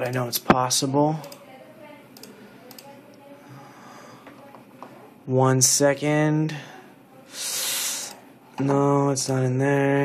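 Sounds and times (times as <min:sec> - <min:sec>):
faint computer clicks: 0:02.1 - 0:03.2.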